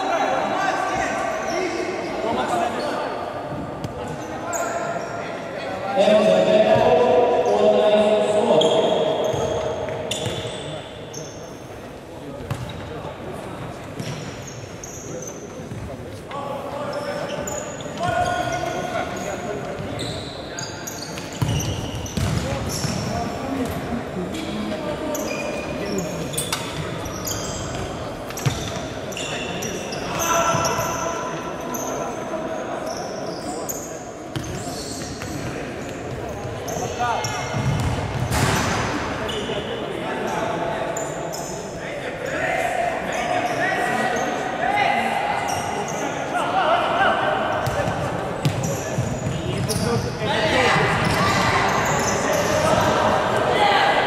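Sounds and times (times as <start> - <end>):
shoe squeaks on court: 8.6 - 11.7, 14.0 - 15.8, 16.8 - 23.1, 25.1 - 32.1, 32.8 - 39.7, 47.6 - 50.2.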